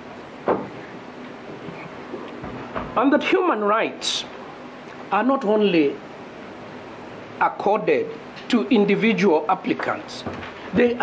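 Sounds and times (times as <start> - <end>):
faint steady hum: 0.0 - 11.0
steady microphone background noise: 0.0 - 11.0.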